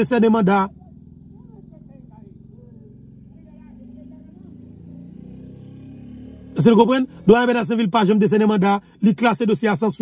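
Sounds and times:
car idling hum: 0.0s - 4.7s, 6.5s - 10.0s.

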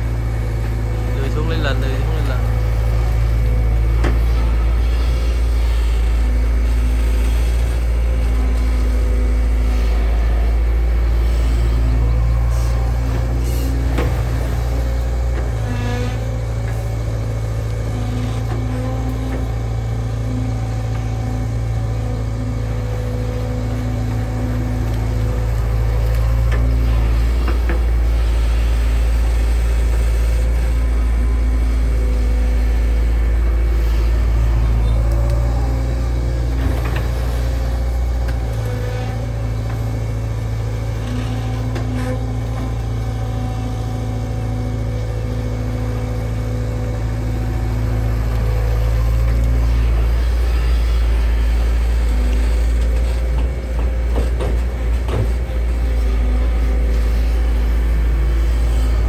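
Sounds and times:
diesel excavator engine running: 0.0s - 59.0s
hydraulics working: 0.0s - 59.0s.

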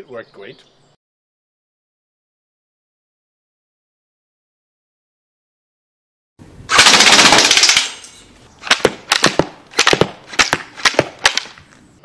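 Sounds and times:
slingshot minigun rapid firing: 6.7s - 8.0s, 8.6s - 11.5s
sharp cracks of shots: 6.7s - 11.6s.

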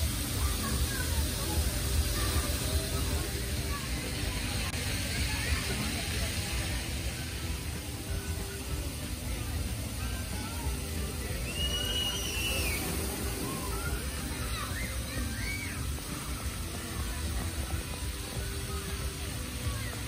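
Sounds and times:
distant crowd chatter: 0.0s - 20.0s
faint music: 0.0s - 20.0s.

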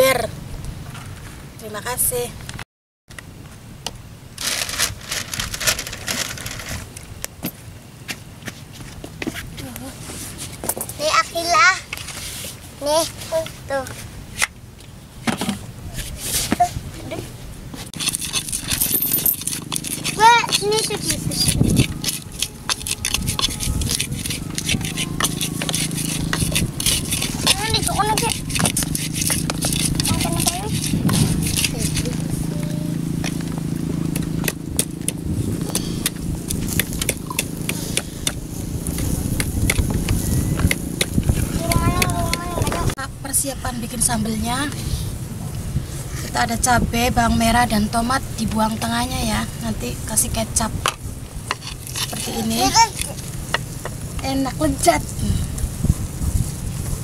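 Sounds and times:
steady low hum: 16.8s - 57.0s
pestle grinding in mortar: 18.0s - 43.0s, 50.8s - 54.2s.

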